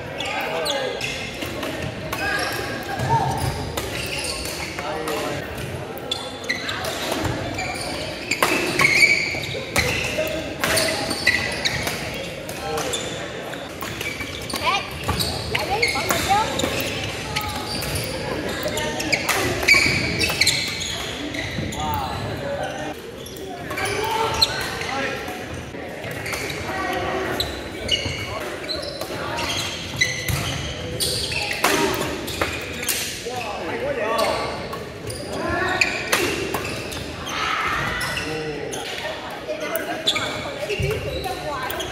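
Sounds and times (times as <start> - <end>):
sneakers squeaking on floor: 0.0 - 25.1, 26.0 - 41.9.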